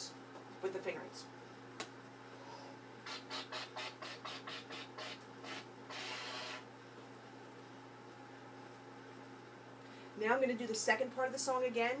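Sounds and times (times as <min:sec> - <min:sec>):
air puffs through trumpet: 0:03.0 - 0:06.7.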